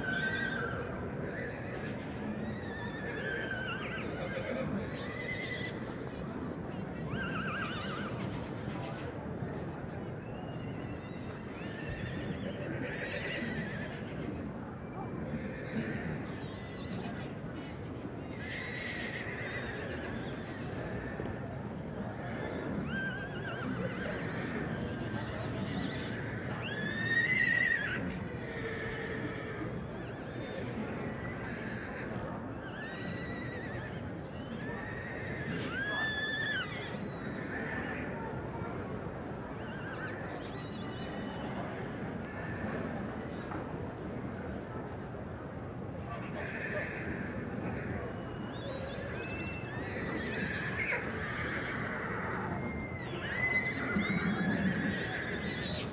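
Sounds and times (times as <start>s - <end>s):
crowd chatter: 0.0s - 55.9s
horses whinnying: 1.4s - 5.8s, 7.1s - 8.3s, 11.9s - 14.2s, 18.4s - 21.3s, 22.4s - 29.6s, 31.2s - 42.0s, 46.2s - 55.9s.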